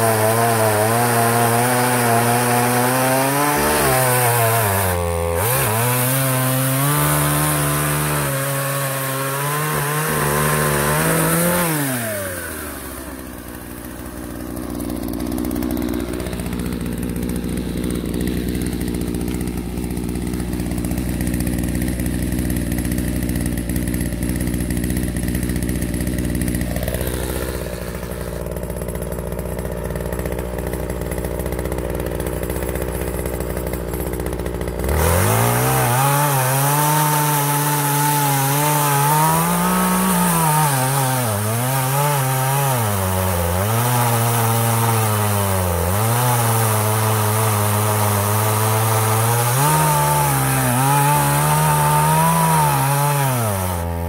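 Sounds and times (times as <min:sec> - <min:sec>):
chainsaw cutting into log: 0:00.0 - 0:54.0
chainsaw idling: 0:00.0 - 0:54.0.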